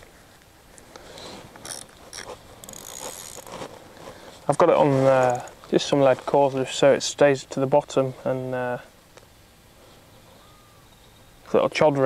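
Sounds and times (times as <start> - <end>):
fishing rig clicking and rustling: 0.0 - 5.8.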